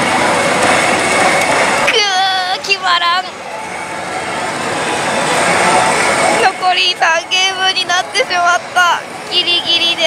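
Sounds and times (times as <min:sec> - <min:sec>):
faint voices: 0:00.0 - 0:10.0
gaming machine noise: 0:00.0 - 0:10.0.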